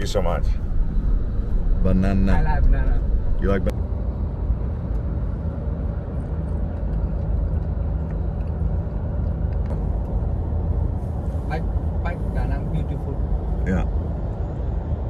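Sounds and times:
car tyres and engine drone: 0:00.0 - 0:15.0.

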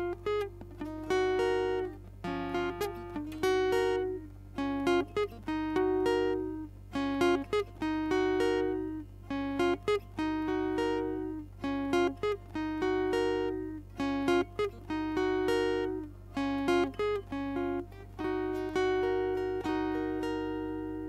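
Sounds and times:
guitar plucked notes: 0:00.0 - 0:21.0
low steady hum: 0:00.0 - 0:21.0.

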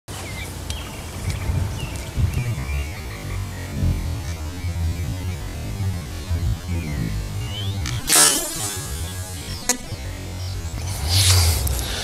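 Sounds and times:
birds chirping: 0:00.1 - 0:12.0
low rumble: 0:01.2 - 0:12.0.

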